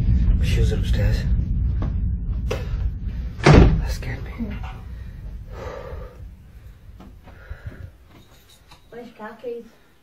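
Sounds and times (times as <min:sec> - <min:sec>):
wooden door slamming: 0:03.4 - 0:03.9.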